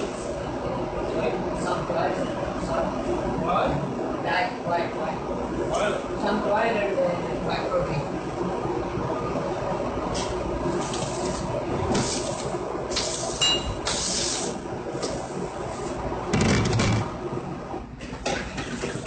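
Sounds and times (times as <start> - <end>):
gas burner and extractor rush: 0.0 - 19.0.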